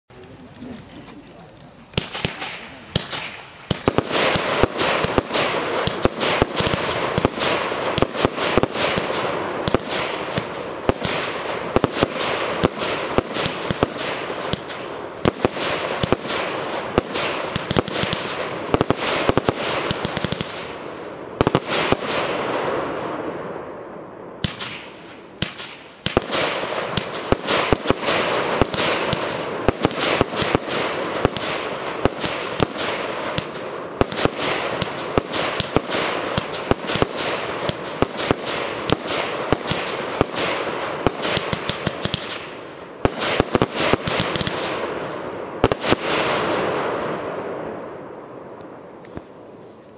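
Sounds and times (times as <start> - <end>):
firework shots bursting: 1.9 - 23.1, 24.4 - 47.7.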